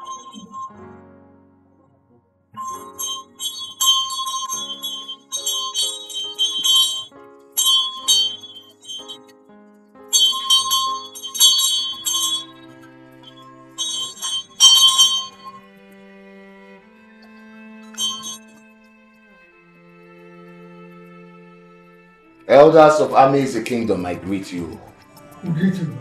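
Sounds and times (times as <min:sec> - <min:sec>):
metal bell clanging: 0:00.0 - 0:00.8, 0:02.6 - 0:09.4, 0:10.1 - 0:15.6, 0:17.8 - 0:18.6
film score music with low notes: 0:00.7 - 0:03.0, 0:12.5 - 0:13.8, 0:15.6 - 0:26.0.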